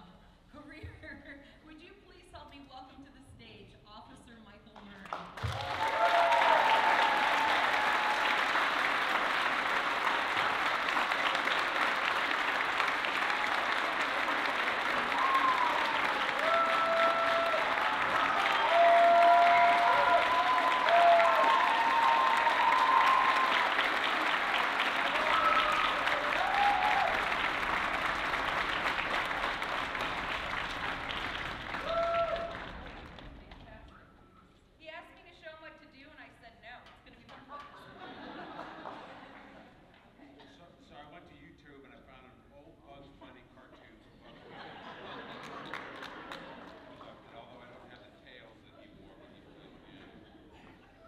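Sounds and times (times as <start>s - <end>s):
audience applauding: 5.0s - 33.8s, 44.5s - 47.7s
cheers and whoops: 5.4s - 8.7s, 13.1s - 27.7s, 31.7s - 32.8s.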